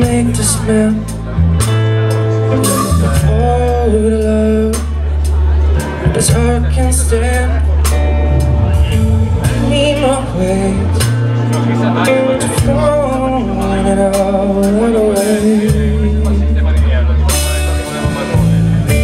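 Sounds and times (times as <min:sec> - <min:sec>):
live blues band playing: 0:00.0 - 0:19.0
bending electric guitar lines: 0:01.3 - 0:04.9, 0:05.6 - 0:16.8.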